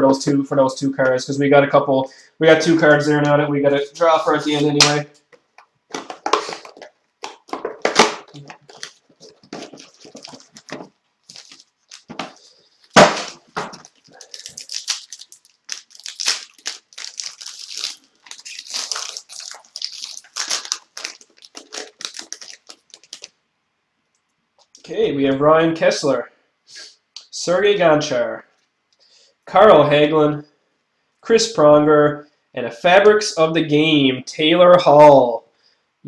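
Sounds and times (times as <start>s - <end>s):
cards rustling and sliding: 5.9s - 23.3s
wrapper crinkling and tearing: 6.0s - 23.4s
sharp crack: 12.2s - 19.6s.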